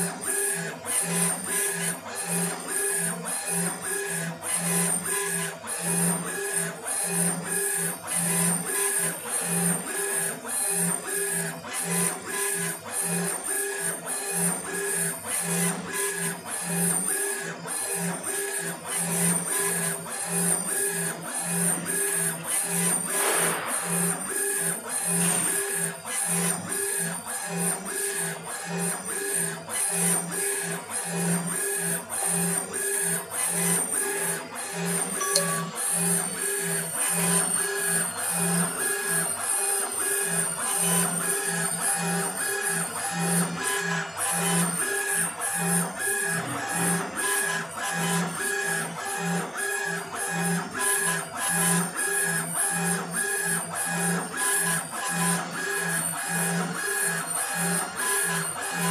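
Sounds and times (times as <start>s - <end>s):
laser engraver motors whirring: 0.0s - 58.9s.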